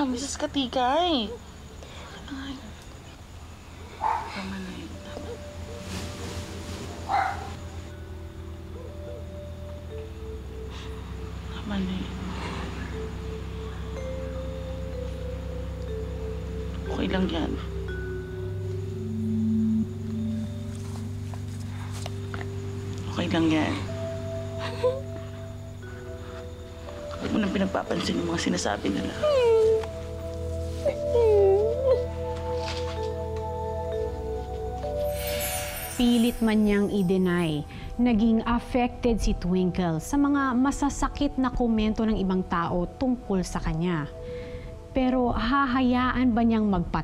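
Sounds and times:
soft background music: 0.0 - 47.0
dog barking: 4.0 - 4.4, 7.1 - 7.6
woman crying: 24.6 - 25.2, 29.1 - 29.9, 30.9 - 32.2.

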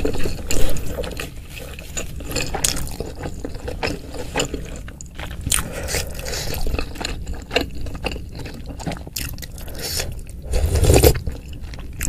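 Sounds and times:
mouth chewing food: 0.0 - 12.0.

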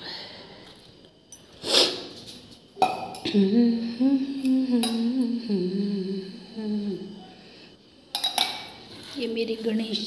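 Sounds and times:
woman humming: 3.2 - 7.4.

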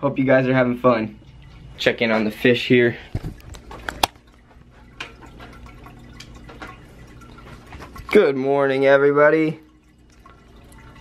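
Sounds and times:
aquarium bubbling and trickling: 0.0 - 11.0.

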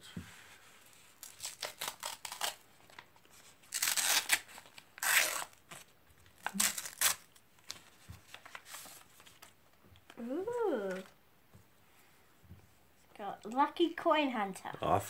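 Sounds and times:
paper tearing and rustling: 1.0 - 9.6.

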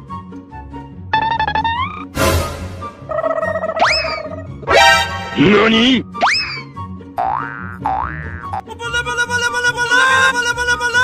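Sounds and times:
comedy music with repeating beat: 1.0 - 11.0
cartoon boing effects: 3.0 - 5.5.

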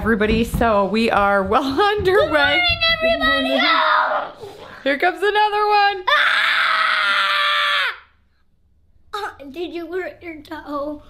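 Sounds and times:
child screaming: 3.2 - 4.4, 6.1 - 8.2.

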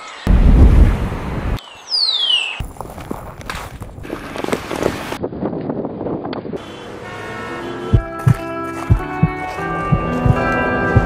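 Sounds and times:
footsteps crunching in snow: 2.6 - 5.1, 8.0 - 11.0
sustained musical chord: 7.6 - 11.0.

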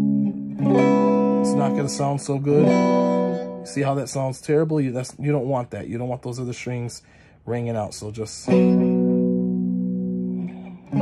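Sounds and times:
electric guitar power chords: 0.0 - 4.0, 8.5 - 11.0.

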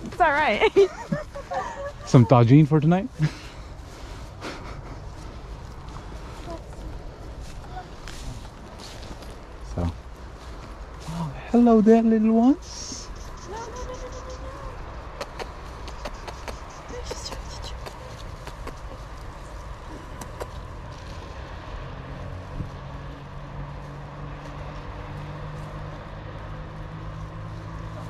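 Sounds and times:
distant vehicle engine hum: 0.0 - 28.0.

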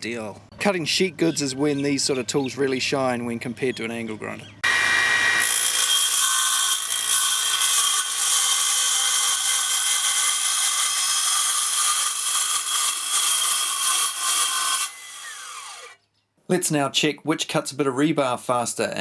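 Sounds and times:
metal saw cutting steel sheet: 4.6 - 16.0.

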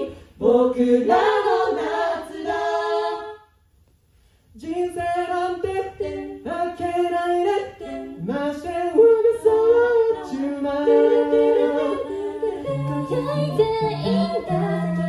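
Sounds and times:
a cappella group singing in harmony: 0.0 - 3.6, 4.5 - 15.0.

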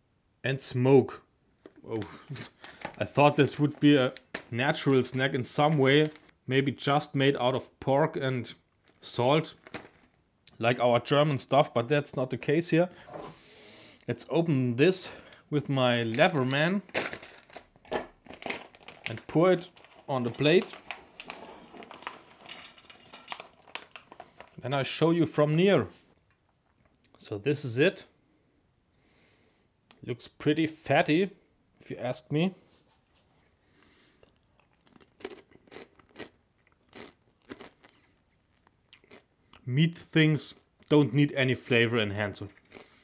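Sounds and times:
plastic snack bag crinkling: 1.7 - 6.4, 8.7 - 10.2, 15.9 - 25.7, 34.2 - 39.2
crisp crunchy chewing: 18.3 - 24.6, 34.2 - 39.6, 42.5 - 43.0.

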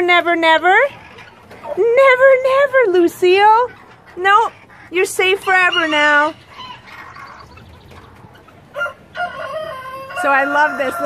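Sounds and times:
chickens clucking: 0.0 - 11.0
rooster crowing: 8.7 - 11.0.

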